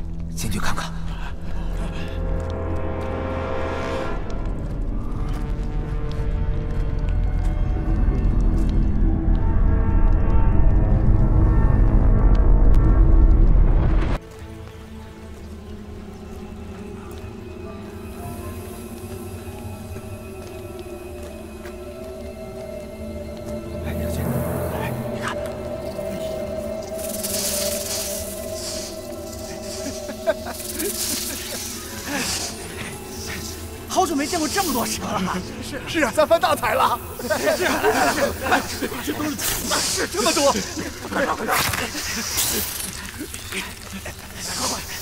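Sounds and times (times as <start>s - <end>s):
deep low drone: 0.0s - 14.2s, 15.0s - 35.9s
suspenseful film score: 0.0s - 45.0s
snakes hissing: 16.8s - 45.0s
slithering over straw: 25.5s - 35.5s, 37.1s - 45.0s.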